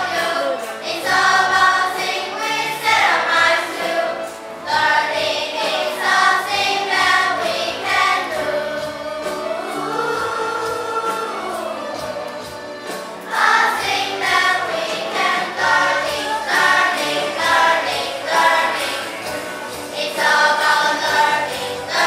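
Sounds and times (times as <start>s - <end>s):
children's choir singing: 0.0s - 22.0s.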